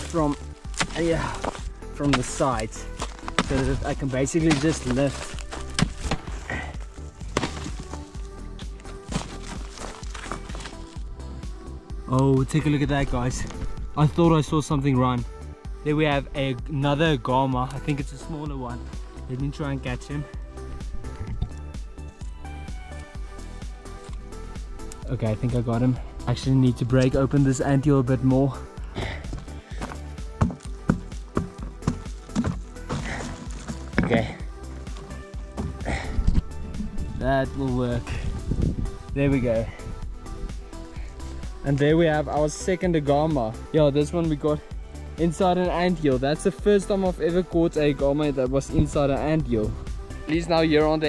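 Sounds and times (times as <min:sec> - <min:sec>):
hammer knocking crumbly earth: 0:00.0 - 0:11.0, 0:29.0 - 0:36.0
background music with steady beat: 0:00.0 - 0:51.0.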